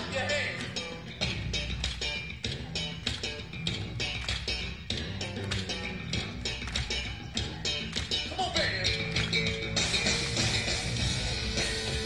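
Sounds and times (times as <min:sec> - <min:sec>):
funk band playing: 0:00.0 - 0:12.0.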